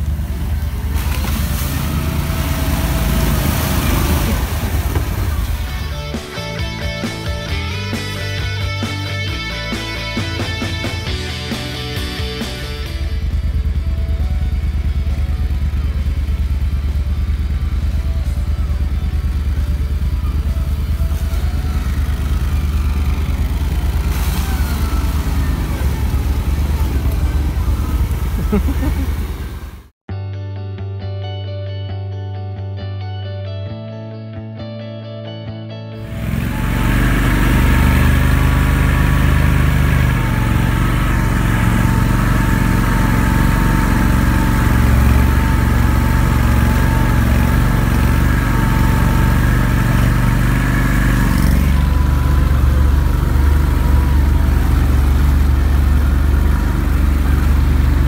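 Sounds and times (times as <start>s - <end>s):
rush of vehicle through wet ground: 0.0s - 29.9s, 36.0s - 58.0s
vehicle engine running: 0.0s - 30.0s, 36.0s - 58.0s.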